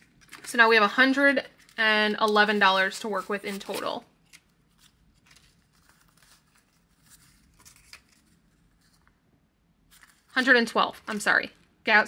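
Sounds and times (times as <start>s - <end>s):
paper banknotes rustling: 1.5s - 9.1s, 9.9s - 11.2s.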